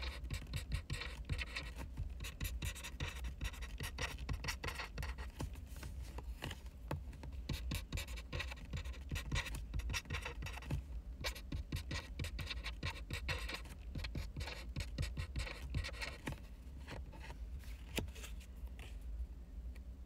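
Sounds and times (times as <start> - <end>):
pen scratching on paper: 0.0 - 5.5, 7.4 - 16.4
steady low hum: 0.0 - 20.0.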